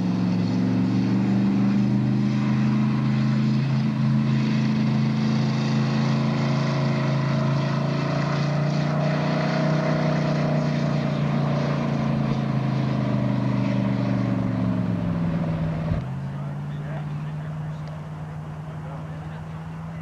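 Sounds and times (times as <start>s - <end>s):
engine running steadily: 0.0s - 20.0s.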